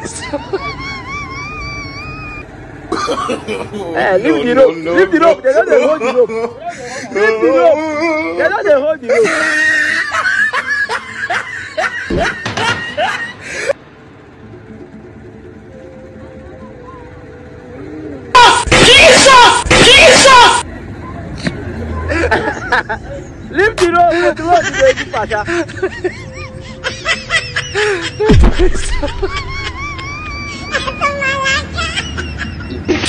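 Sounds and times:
person laughing: 0.0s - 2.4s, 9.0s - 13.8s, 24.4s - 33.0s.

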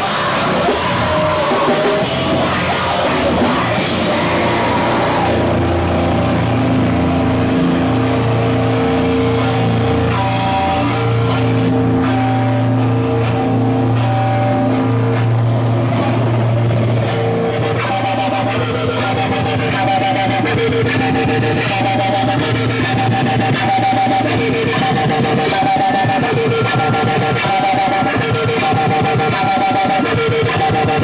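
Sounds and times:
distorted electric guitars droning: 0.0s - 31.0s.

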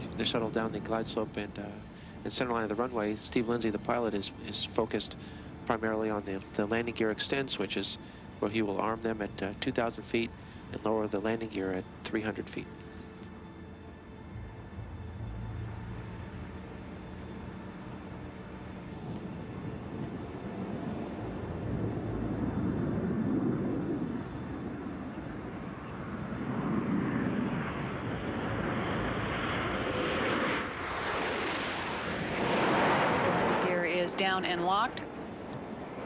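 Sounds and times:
rush of air over aircraft: 0.0s - 36.0s.

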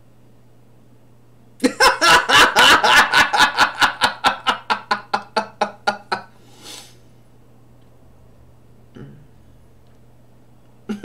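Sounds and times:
man laughing hard: 1.6s - 6.3s
breathy exhale: 6.3s - 7.0s.

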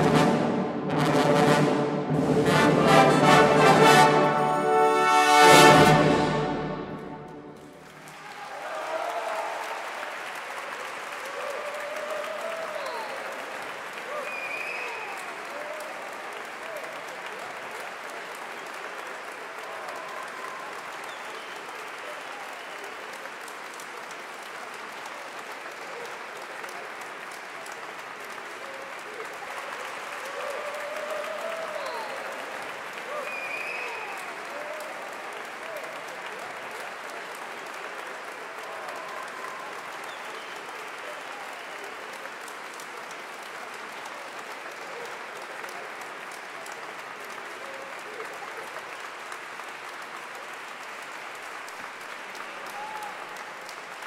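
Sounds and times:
large audience applauding: 0.0s - 54.0s.

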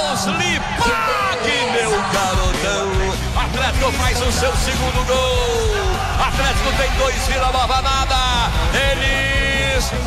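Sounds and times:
background music: 0.0s - 10.0s
man commentating with long cries: 0.0s - 10.0s.

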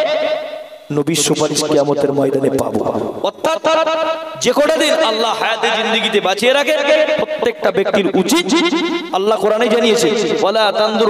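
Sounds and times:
man preaching in sung delivery: 0.0s - 11.0s.

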